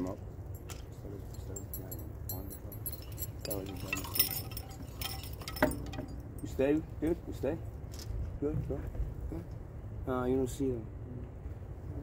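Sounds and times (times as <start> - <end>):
light metallic jingling: 0.0 - 7.6.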